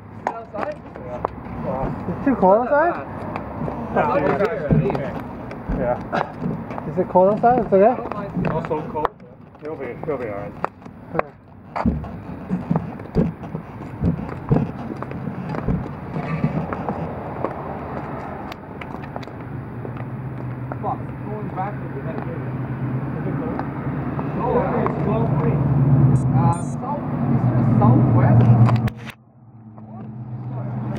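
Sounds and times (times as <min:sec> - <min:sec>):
vehicle engine hum: 0:00.0 - 0:30.9
indistinct voices: 0:00.2 - 0:17.5, 0:20.7 - 0:28.9.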